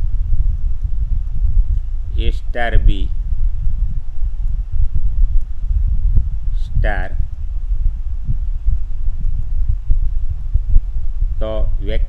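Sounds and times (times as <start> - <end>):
low rumble on microphone: 0.0 - 12.0.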